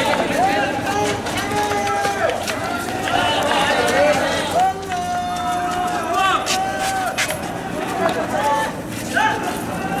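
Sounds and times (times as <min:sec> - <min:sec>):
street noise: 0:00.0 - 0:10.0.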